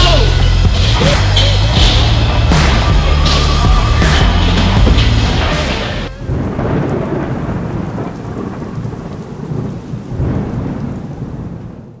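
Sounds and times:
steady rain: 6.0 - 12.0
thunder: 6.2 - 12.0.

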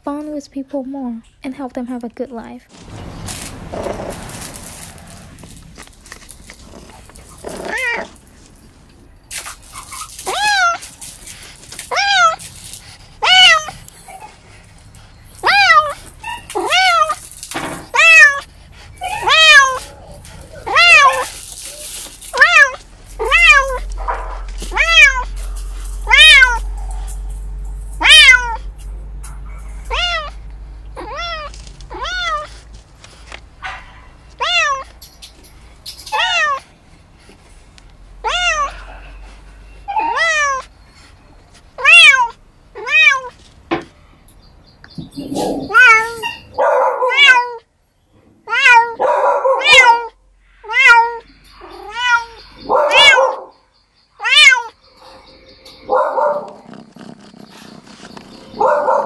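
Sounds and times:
kitten meowing: 19.1 - 20.0, 20.7 - 21.4, 22.3 - 26.7, 28.0 - 28.6, 29.8 - 30.4, 45.2 - 46.4, 48.5 - 49.0, 49.6 - 51.2.

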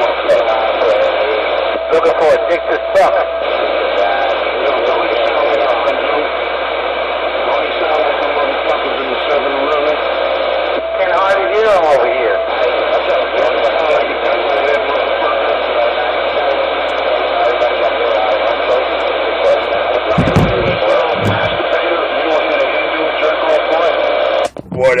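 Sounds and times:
radio static: 0.0 - 25.0
voice over radio: 0.0 - 25.0
low thumps: 20.1 - 21.6, 24.4 - 25.0.

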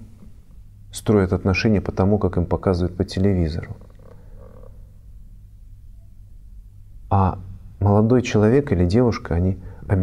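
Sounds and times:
low electrical hum: 0.0 - 10.0.

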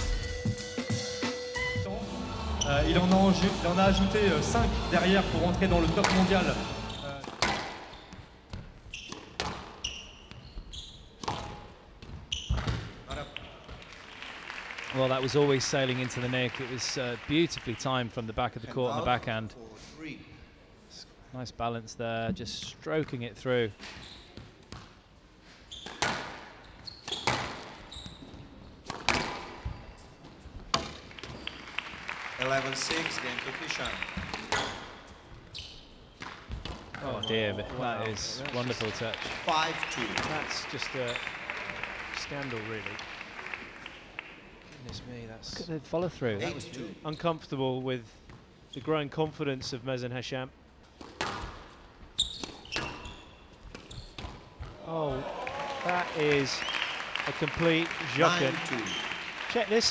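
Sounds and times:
shoes squeaking on court floor: 5.8 - 13.8, 23.7 - 31.7, 32.9 - 41.6, 46.4 - 47.5, 48.2 - 49.1, 50.8 - 55.0, 58.2 - 59.4
squash ball hits: 7.2 - 7.9, 25.8 - 26.4, 28.8 - 29.7, 51.0 - 51.7.

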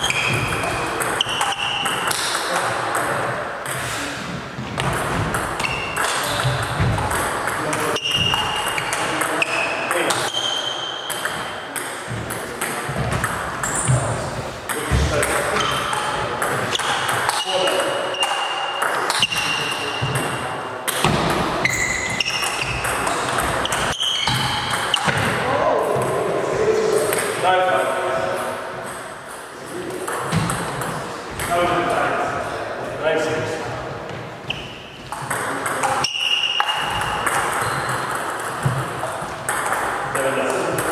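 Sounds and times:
table tennis ball hits: 0.0 - 4.0, 4.7 - 25.4, 28.8 - 31.7, 35.1 - 40.9.

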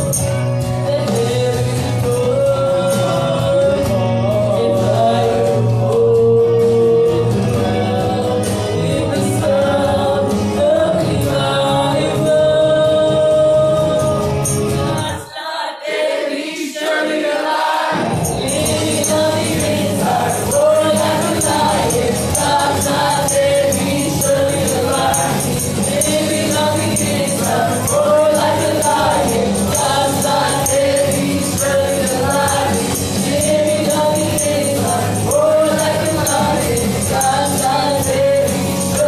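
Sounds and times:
tambourine shaken: 0.0 - 3.4, 13.4 - 15.3, 18.1 - 39.0
backing music: 0.0 - 15.3, 17.4 - 39.0
woman singing into microphone: 0.8 - 14.4
voices singing along: 0.8 - 39.0.

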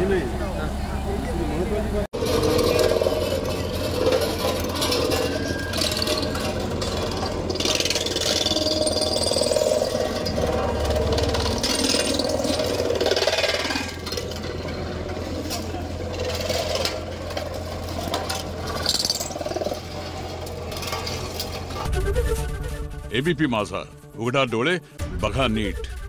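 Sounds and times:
road roller diesel engine running: 0.0 - 23.0.

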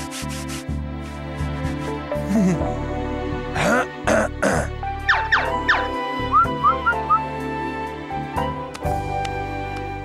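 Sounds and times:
cartoon background music: 0.0 - 10.0
rising whistle chirps: 6.2 - 7.3.

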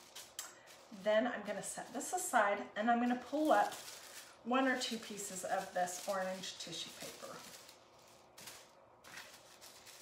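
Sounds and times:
tissue paper rustling: 0.0 - 10.0.

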